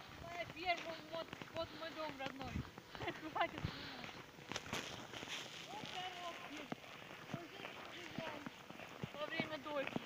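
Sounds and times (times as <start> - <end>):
footsteps crunching in snow: 0.0 - 10.0.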